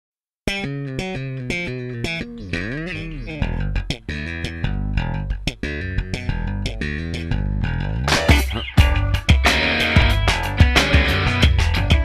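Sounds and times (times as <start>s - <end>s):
plucked bass and guitar riff: 0.4s - 12.0s
rock band playing: 7.9s - 12.0s.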